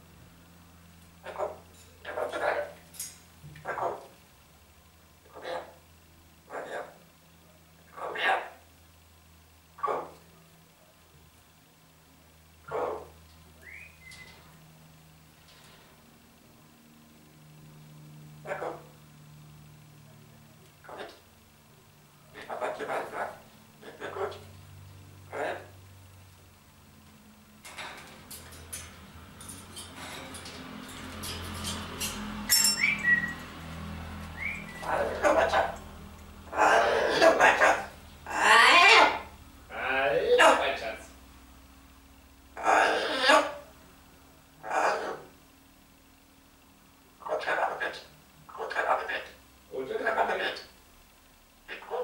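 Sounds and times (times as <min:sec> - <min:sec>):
steady low hum: 0:00.0 - 0:52.0
parrot bark-like call: 0:01.2 - 0:02.8, 0:03.6 - 0:04.1, 0:05.2 - 0:05.8, 0:06.4 - 0:08.7, 0:09.8 - 0:10.3, 0:12.6 - 0:14.5, 0:18.4 - 0:19.0, 0:20.8 - 0:21.2, 0:22.3 - 0:24.5, 0:25.3 - 0:25.8, 0:32.4 - 0:41.0, 0:42.6 - 0:43.8, 0:44.6 - 0:45.4, 0:47.2 - 0:49.3.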